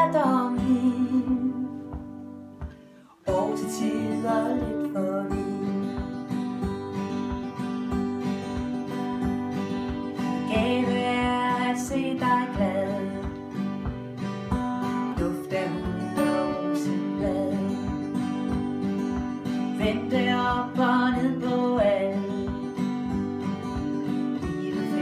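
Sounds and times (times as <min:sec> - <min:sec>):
acoustic guitars strumming: 0:00.0 - 0:25.0.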